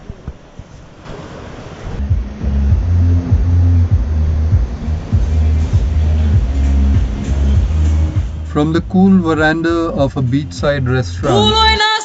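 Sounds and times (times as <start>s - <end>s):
music with deep bass line: 2.0s - 11.9s.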